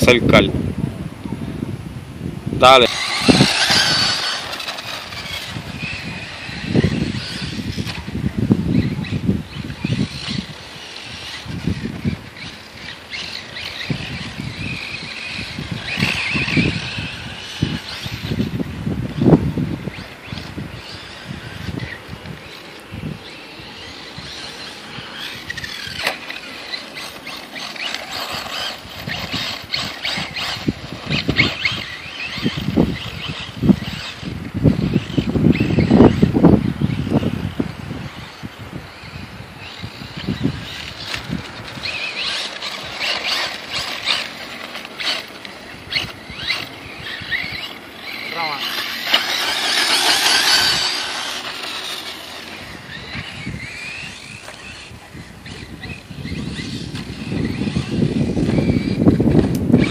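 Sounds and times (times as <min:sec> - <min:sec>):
electric motor whining: 0:01.7 - 0:59.9.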